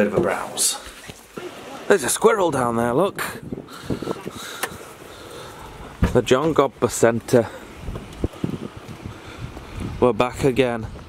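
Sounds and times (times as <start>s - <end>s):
wind rushing over microphone: 2.4s - 5.0s, 5.6s - 11.0s.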